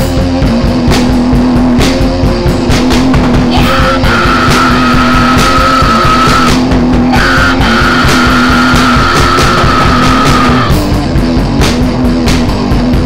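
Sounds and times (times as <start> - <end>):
heavy distorted rock music: 0.0 - 13.0.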